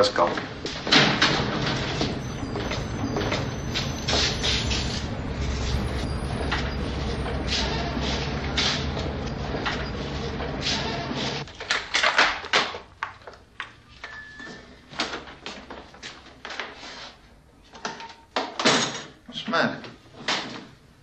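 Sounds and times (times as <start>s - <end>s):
low street rumble: 0.0s - 11.5s
footsteps in small room: 0.0s - 11.6s, 12.3s - 17.7s.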